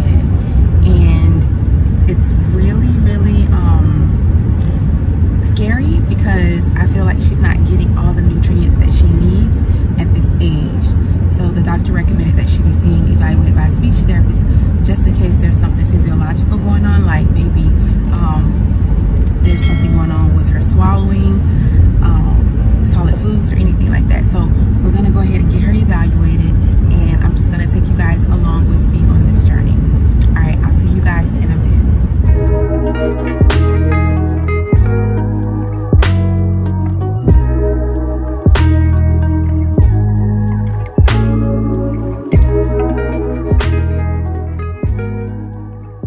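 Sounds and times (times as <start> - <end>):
woman talking: 0.0 - 4.8, 5.4 - 32.4
car interior rumble: 0.0 - 46.0.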